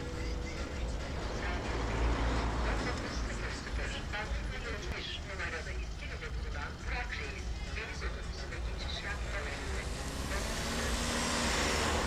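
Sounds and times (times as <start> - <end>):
car passing: 0.0 - 5.0, 8.5 - 12.0
traffic rumble: 0.0 - 12.0.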